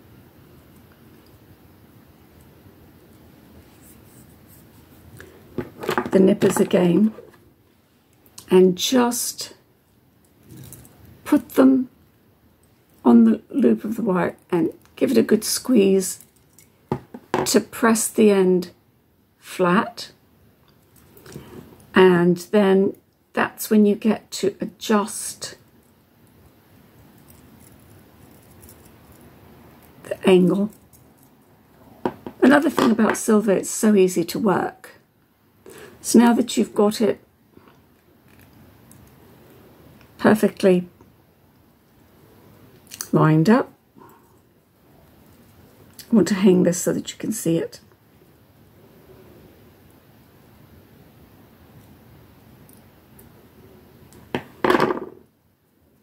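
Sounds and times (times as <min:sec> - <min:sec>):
low room noise: 0:00.0 - 0:56.0.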